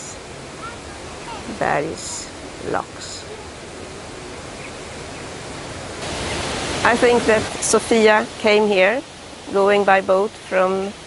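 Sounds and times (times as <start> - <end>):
steady outdoor rushing noise: 0.0 - 10.5.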